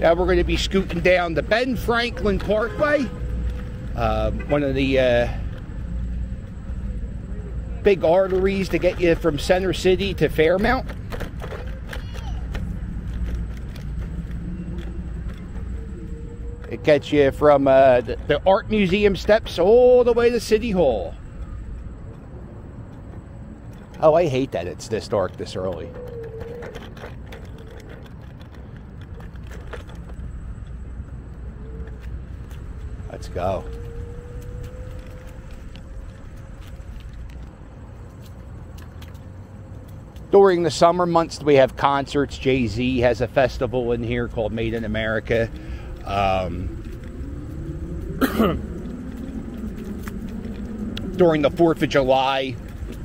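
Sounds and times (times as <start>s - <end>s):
electric scooter riding: 0.0s - 53.0s
road rumble: 0.0s - 53.0s
wind: 0.0s - 53.0s.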